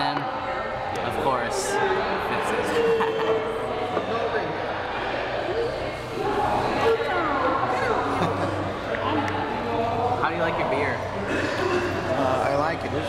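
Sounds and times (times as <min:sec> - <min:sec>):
indistinct chatter of voices: 0:00.0 - 0:13.0.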